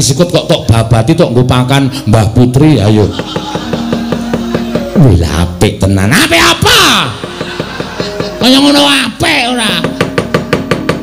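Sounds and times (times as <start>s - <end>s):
rapid wooden knocking: 7.1s - 8.7s, 9.7s - 11.0s.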